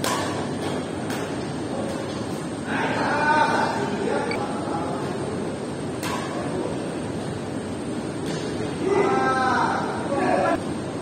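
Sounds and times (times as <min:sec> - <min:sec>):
din of players and court noise: 0:00.0 - 0:11.0.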